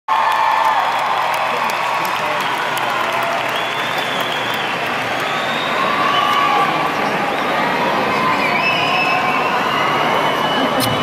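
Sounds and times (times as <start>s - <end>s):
crowd cheering: 0.1s - 11.0s.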